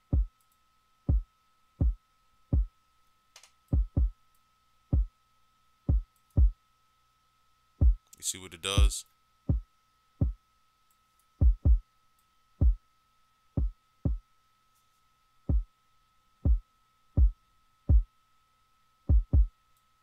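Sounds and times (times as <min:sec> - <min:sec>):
deep kick drum thumps: 0:00.0 - 0:00.3, 0:03.8 - 0:04.1, 0:05.9 - 0:06.6, 0:07.8 - 0:08.0, 0:09.5 - 0:10.4, 0:11.4 - 0:11.8, 0:13.6 - 0:14.2, 0:17.2 - 0:18.1, 0:19.1 - 0:19.5.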